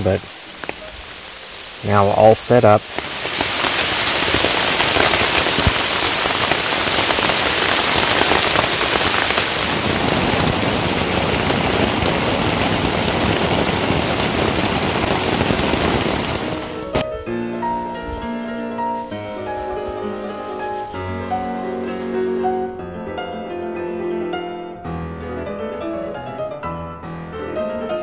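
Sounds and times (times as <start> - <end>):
heavy rain: 0.0 - 17.0.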